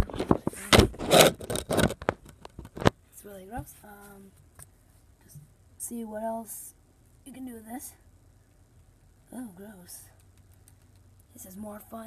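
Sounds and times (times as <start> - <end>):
phone being handled: 0.0 - 3.0.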